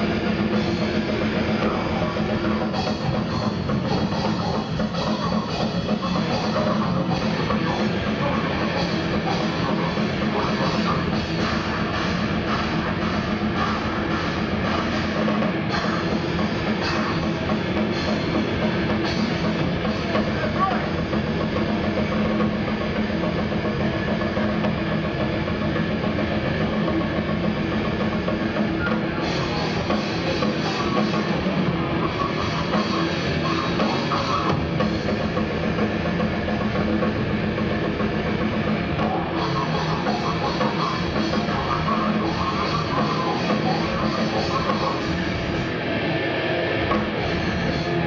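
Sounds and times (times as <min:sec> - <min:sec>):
distorted guitar: 0:00.0 - 0:48.0
fast drum kit: 0:00.0 - 0:48.0.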